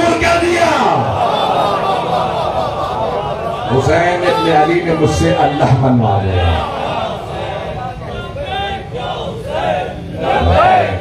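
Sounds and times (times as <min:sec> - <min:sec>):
crowd of men shouting: 0:00.0 - 0:11.0.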